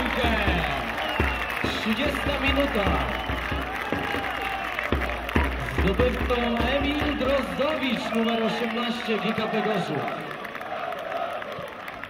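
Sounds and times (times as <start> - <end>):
crowd applauding: 0.0 - 12.0
stadium crowd cheering: 0.0 - 12.0.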